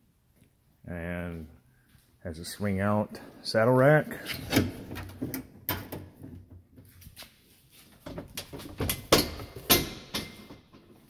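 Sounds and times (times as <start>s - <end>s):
metal saddle rack clanking: 8.2s - 11.0s.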